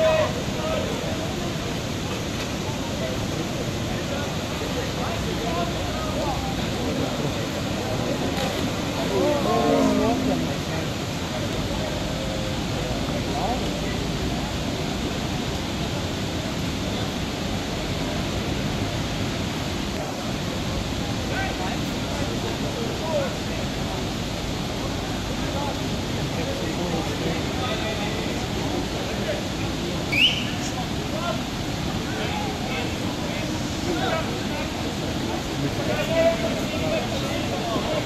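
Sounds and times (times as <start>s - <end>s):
faint distant voices: 0.0s - 38.0s
water rushing through sluice gate: 0.0s - 38.0s.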